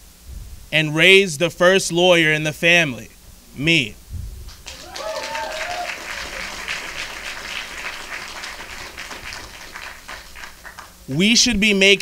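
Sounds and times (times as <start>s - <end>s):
audience applauding: 4.5s - 11.4s.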